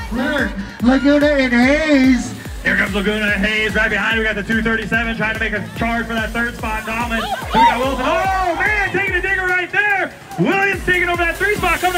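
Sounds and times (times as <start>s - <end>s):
man calling a race: 0.0s - 11.9s.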